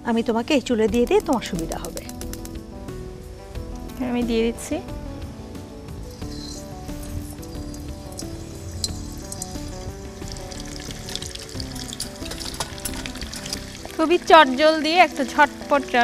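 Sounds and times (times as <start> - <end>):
background music: 0.0 - 16.0
prawns sizzling in hot oil: 5.9 - 16.0.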